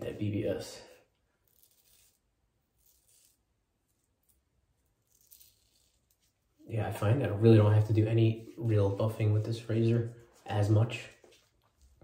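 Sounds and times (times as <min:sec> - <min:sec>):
razor scraping stubble: 0:01.4 - 0:06.6.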